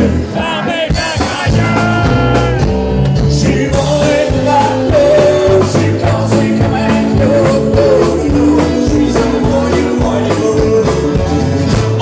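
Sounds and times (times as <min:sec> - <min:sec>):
country-rock band playing: 0:00.0 - 0:12.0
man singing: 0:00.0 - 0:12.0.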